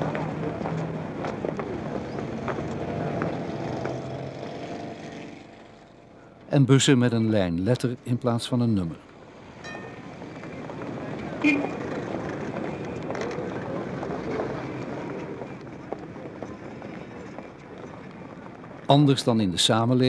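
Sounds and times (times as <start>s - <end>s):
traffic noise: 0.0s - 20.0s.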